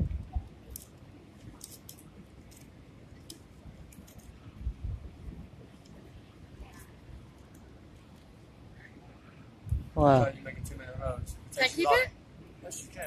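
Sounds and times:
palm fronds crinkling and ticking: 0:00.2 - 0:04.6.

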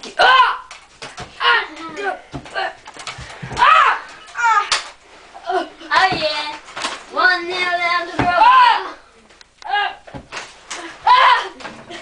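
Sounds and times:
child crying out: 0:11.0 - 0:11.6.

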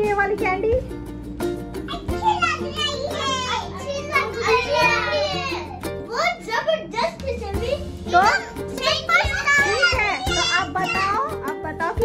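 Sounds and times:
background music: 0:00.0 - 0:12.0
children's high-pitched voices: 0:01.9 - 0:11.5.

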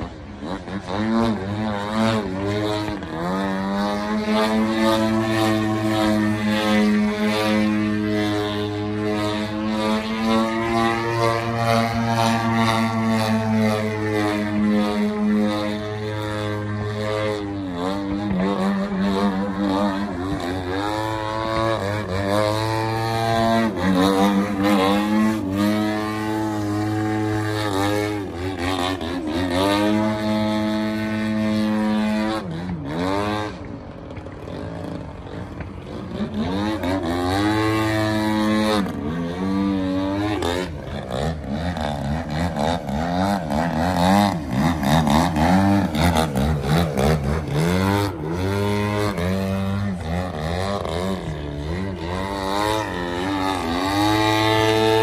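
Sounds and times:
model plane engine and propeller: 0:00.0 - 0:55.0.

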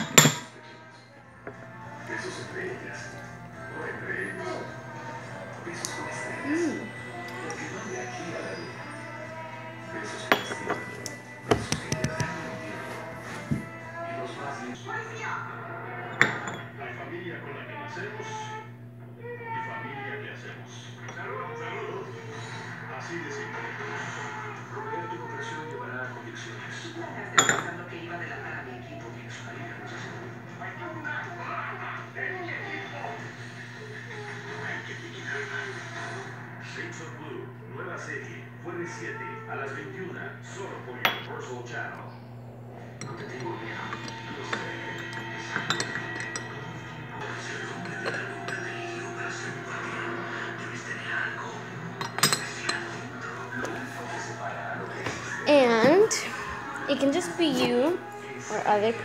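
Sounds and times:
ceramic clink: 0:00.0 - 0:00.5, 0:10.2 - 0:12.3, 0:16.1 - 0:16.8, 0:27.4 - 0:27.8, 0:41.0 - 0:41.4, 0:43.0 - 0:46.6, 0:47.7 - 0:48.8, 0:52.0 - 0:53.0.

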